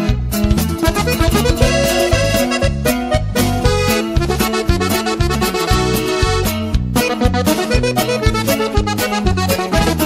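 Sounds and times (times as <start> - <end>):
accordion: 0.0 - 10.0
bass notes: 0.0 - 10.0
steady beat: 0.0 - 10.0.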